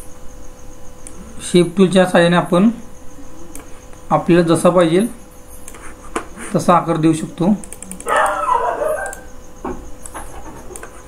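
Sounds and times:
animal call falling in pitch: 0:08.0 - 0:09.3.

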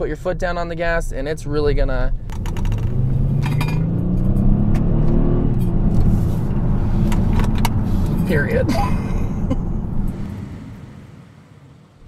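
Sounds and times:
car engine accelerating hard: 0:02.2 - 0:12.0.

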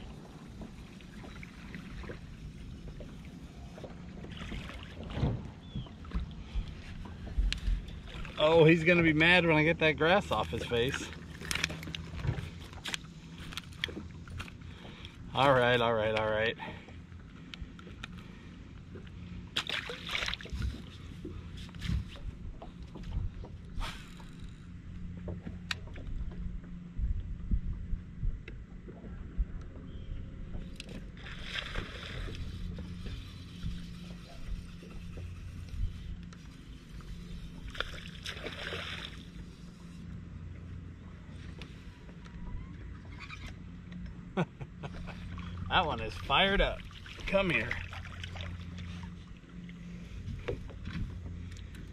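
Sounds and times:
steady low hum: 0:00.0 - 0:51.9
water sloshing against boat hull: 0:00.0 - 0:51.9.

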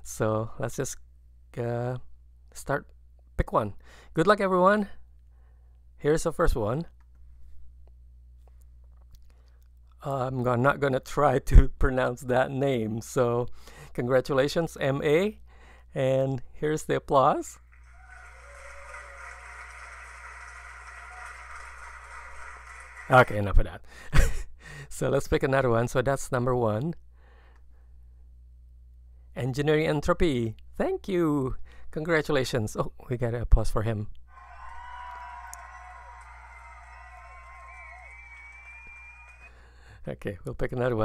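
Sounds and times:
faint crowd applauding: 0:17.7 - 0:23.5, 0:34.3 - 0:39.6
cheering voices: 0:17.8 - 0:23.4, 0:34.3 - 0:39.5
long high whistle: 0:18.0 - 0:21.5, 0:34.4 - 0:39.6.

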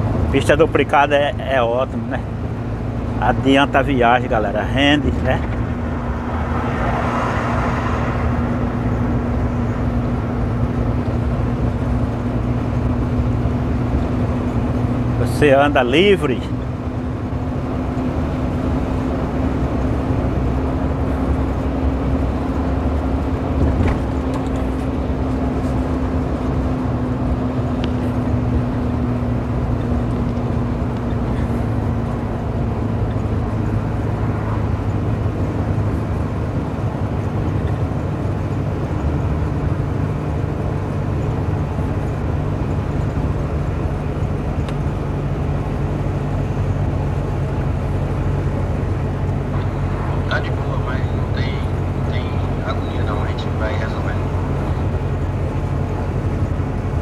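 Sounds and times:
road noise: 0:00.0 - 0:57.0
truck diesel engine running: 0:00.0 - 0:57.0.

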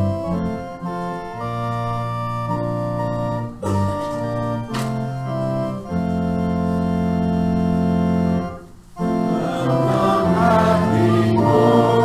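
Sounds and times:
organ playing chords: 0:00.0 - 0:12.0.

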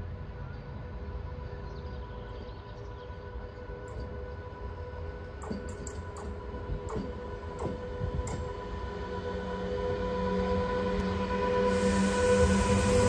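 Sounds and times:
electric locomotive whine: 0:00.0 - 0:13.0
train rushing and rolling: 0:00.0 - 0:13.0.

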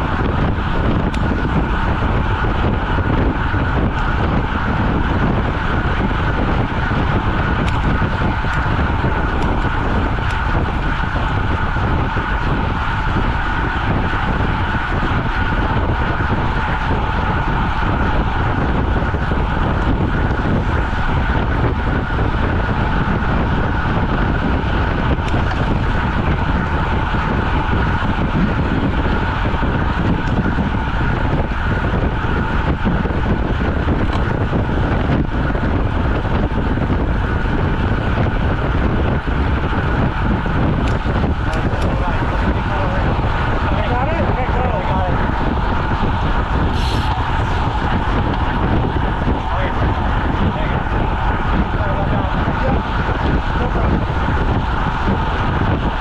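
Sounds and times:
steady whine: 0:00.0 - 0:56.0
wind rushing over microphone: 0:00.0 - 0:56.0.

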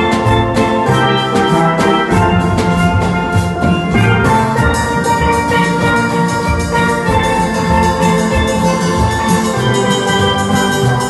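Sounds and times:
steel band playing: 0:00.0 - 0:11.0.

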